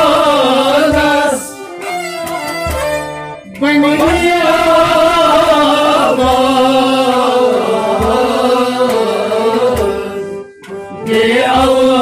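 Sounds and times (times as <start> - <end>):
man singing ornamented notes: 3.4 - 12.0
steady drone: 3.4 - 12.0
low drum beats: 3.8 - 10.1.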